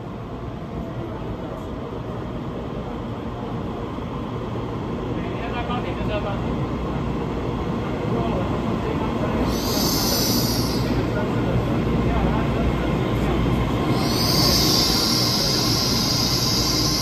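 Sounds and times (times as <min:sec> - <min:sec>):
electric train approaching: 0:00.0 - 0:17.0.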